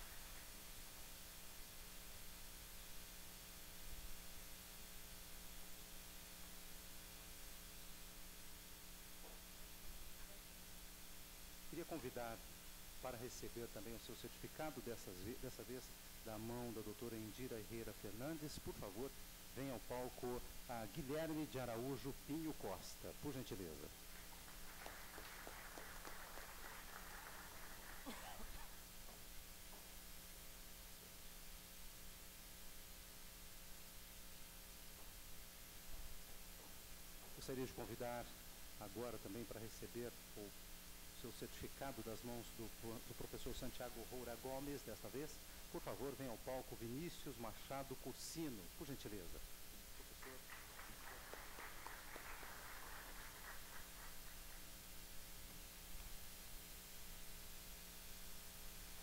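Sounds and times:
scattered applause: 24.1s - 28.6s, 50.1s - 54.6s.

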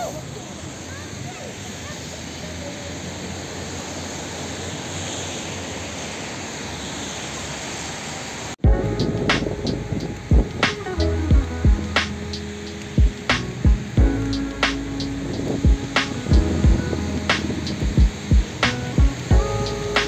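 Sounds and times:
rain and fountains hissing: 0.0s - 20.0s
music with deep heavy beats: 8.6s - 20.0s.

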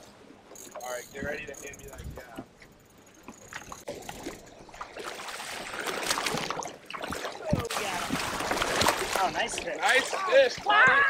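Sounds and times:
water splashing and churning: 3.1s - 11.0s.

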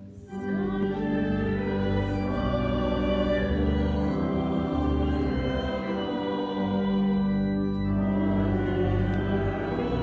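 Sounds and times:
choir singing a hymn: 0.0s - 10.0s
low sustained instrumental notes: 0.0s - 10.0s.

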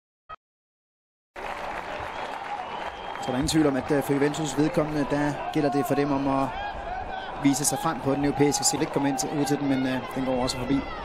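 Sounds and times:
stadium crowd noise: 1.4s - 11.0s.

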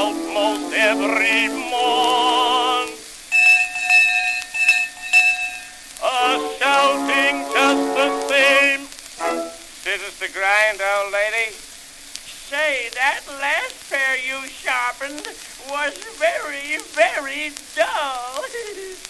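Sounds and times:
sung vocal phrases: 0.0s - 3.1s, 6.0s - 11.6s, 12.3s - 19.0s
old record surface crackle: 0.0s - 19.0s
bell-like ringing tone: 3.3s - 6.1s.

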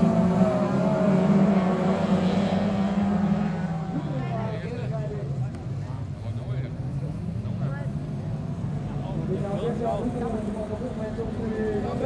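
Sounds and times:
distant car engines droning: 0.0s - 12.0s.

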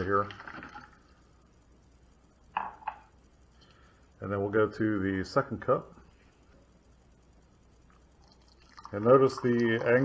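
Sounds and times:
mug clacking on stone countertop: 2.6s - 3.1s.

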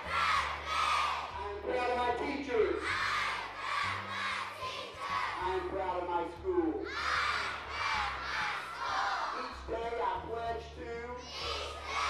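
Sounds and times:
children reciting in unison: 2.8s - 5.4s, 6.9s - 9.6s, 11.3s - 12.0s.

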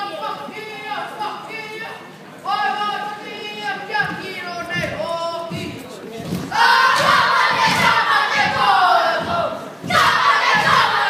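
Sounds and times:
boys chanting in unison: 6.5s - 11.0s.

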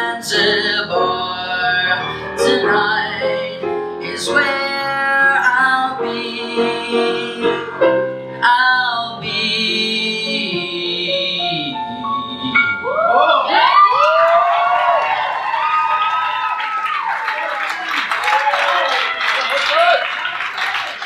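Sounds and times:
piano chord and run: 0.0s - 13.2s
audience cheering and whooping: 12.8s - 21.0s
audience applauding: 13.3s - 21.0s.

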